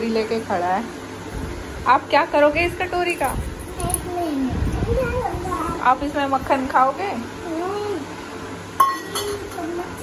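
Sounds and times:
metal dish clinking: 8.8 - 9.7.

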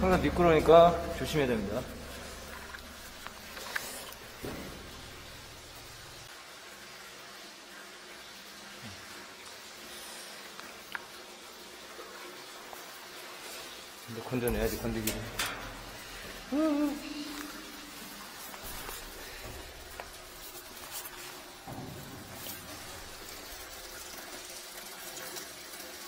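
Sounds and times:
faint steady hiss: 0.0 - 25.6.

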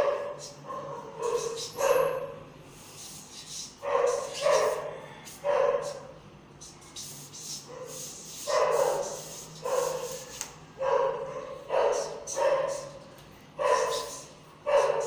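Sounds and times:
dog barking: 0.0 - 2.4, 3.8 - 6.1, 7.7 - 13.0, 13.6 - 15.0.

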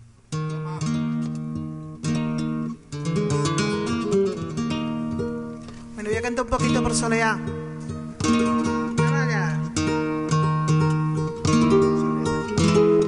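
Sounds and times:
flamenco guitar: 0.0 - 13.0.

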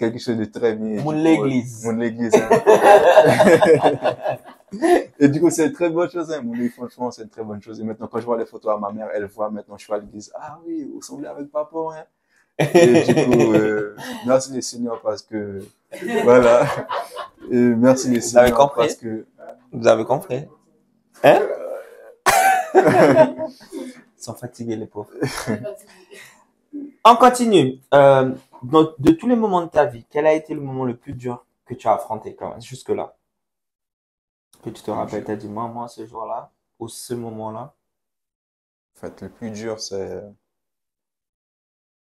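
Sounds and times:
men laughing: 2.3 - 5.2, 12.6 - 14.2, 16.0 - 19.0, 21.2 - 24.0, 25.2 - 25.9
man saying a word: 12.8 - 15.0, 21.2 - 22.1.

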